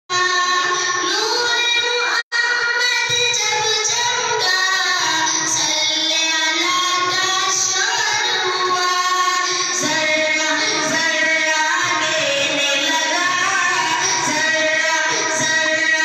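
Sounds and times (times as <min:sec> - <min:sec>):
person singing devotional song: 0:00.1 - 0:16.0.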